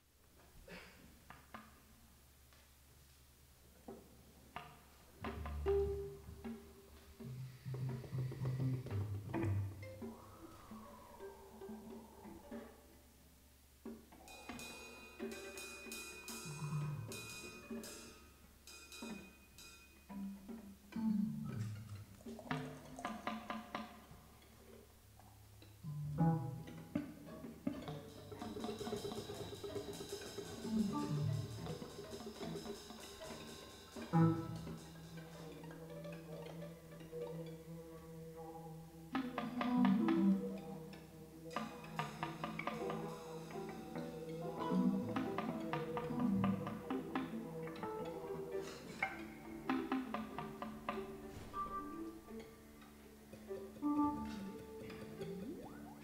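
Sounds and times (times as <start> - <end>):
sharp percussive knocks and clicks: 21.6 - 24.2, 41.5 - 47.9, 48.9 - 51.2.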